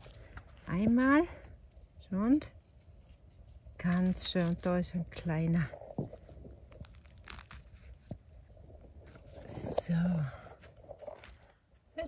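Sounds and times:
rustling and crackling leaf litter: 0:01.4 - 0:12.0.

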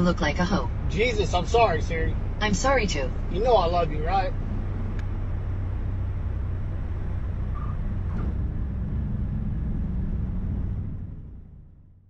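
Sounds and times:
airplane engine and propeller drone: 0:00.0 - 0:12.0.

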